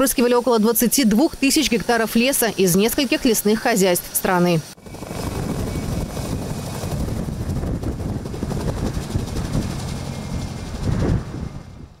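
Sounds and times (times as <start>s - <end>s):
helicopter engine noise: 0.0s - 12.0s
helicopter rotor beating: 0.0s - 12.0s.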